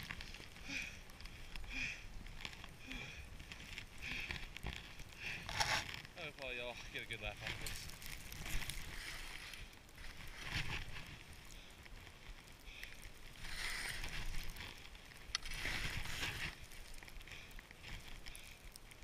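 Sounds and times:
skis swooshing through snow: 0:04.6 - 0:18.9.

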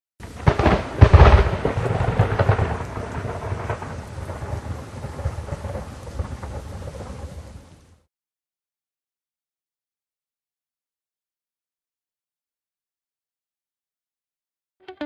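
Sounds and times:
thunderclap: 0:00.2 - 0:07.7
rolling thunder rumble: 0:00.2 - 0:08.0
rain hiss: 0:00.2 - 0:08.1.

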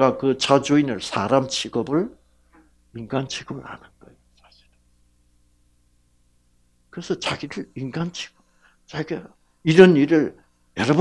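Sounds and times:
man speaking: 0:00.0 - 0:02.2, 0:02.9 - 0:04.7, 0:06.9 - 0:11.0
faint steady hum: 0:00.0 - 0:11.0.

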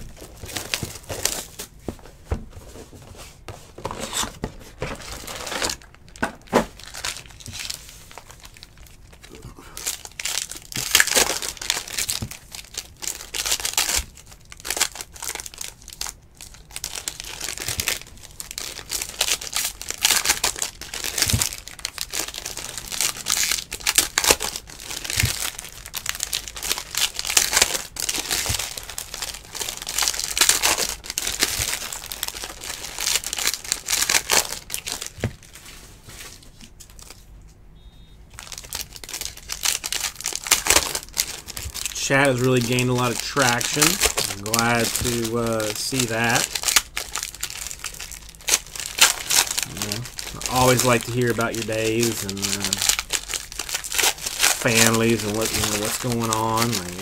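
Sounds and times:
foil wrappers crinkling and tearing: 0:00.0 - 0:01.8, 0:03.8 - 0:37.3, 0:38.4 - 0:57.0.

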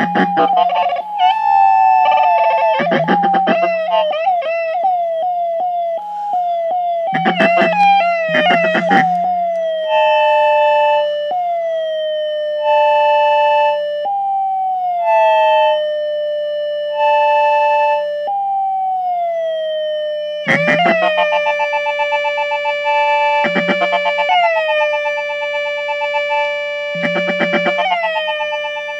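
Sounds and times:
high synth beep: 0:00.0 - 0:04.0, 0:07.2 - 0:10.2
synth tone sliding down: 0:00.0 - 0:05.0, 0:06.4 - 0:10.7, 0:26.9 - 0:28.2
stuttering pulse with clicks: 0:02.8 - 0:03.9, 0:07.2 - 0:09.8, 0:20.5 - 0:21.4, 0:23.4 - 0:24.3, 0:27.0 - 0:27.9
low steady drone: 0:07.1 - 0:10.8, 0:26.9 - 0:27.9.

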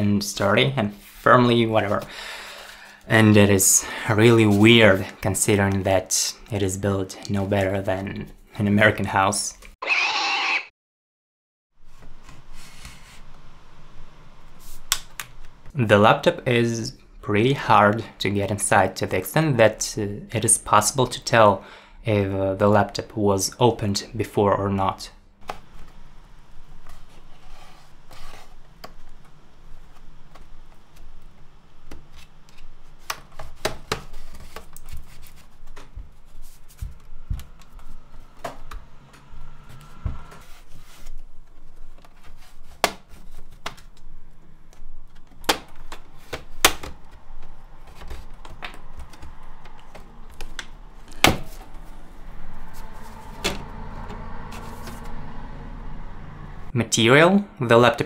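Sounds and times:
laptop case being pried: 0:48.0 - 0:51.7.

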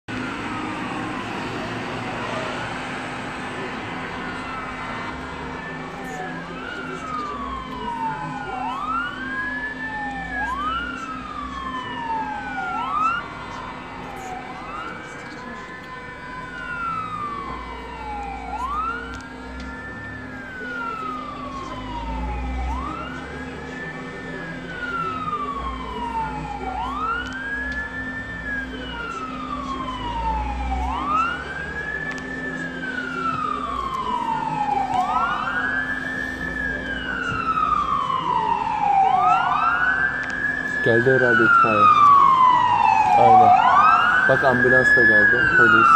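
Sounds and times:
emergency sirens wailing: 0:00.0 - 0:45.9.

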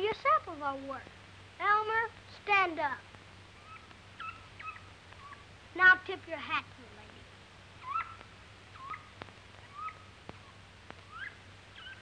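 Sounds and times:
monkey squeaking: 0:03.6 - 0:05.4, 0:07.8 - 0:08.2.

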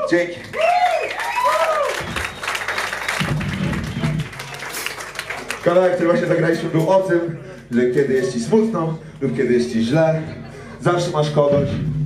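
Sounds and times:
audience applause: 0:00.4 - 0:06.3.

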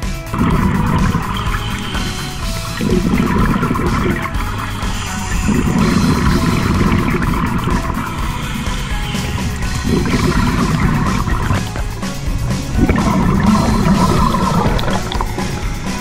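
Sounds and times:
background music: 0:00.0 - 0:16.0
underwater exhaust bubbles rumbling: 0:00.0 - 0:16.0.

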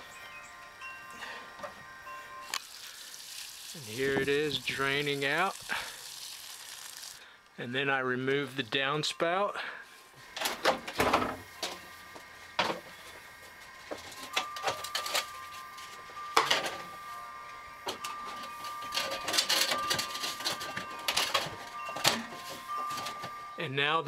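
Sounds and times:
faint steady high tone: 0:00.0 - 0:02.6, 0:14.1 - 0:24.0.

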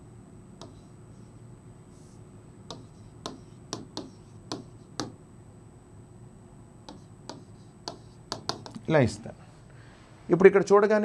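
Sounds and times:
stylus tapping on touchscreen: 0:00.6 - 0:00.8, 0:02.7 - 0:05.2, 0:06.8 - 0:08.8.

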